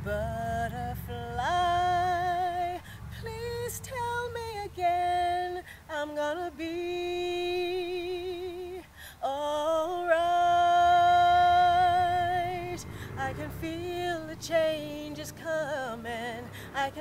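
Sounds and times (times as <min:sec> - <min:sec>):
woman singing unaccompanied: 0:00.0 - 0:17.0.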